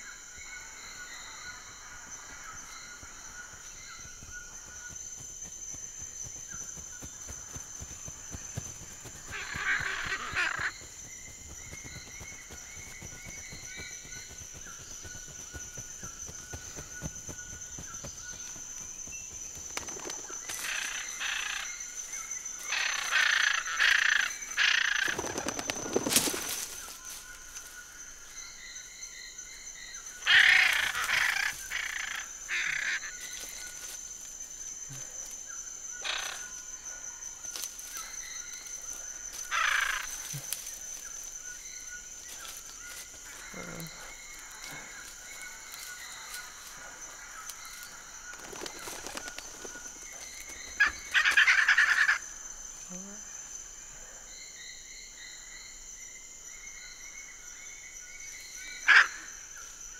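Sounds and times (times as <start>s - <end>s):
high insect drone: 0.0s - 59.9s.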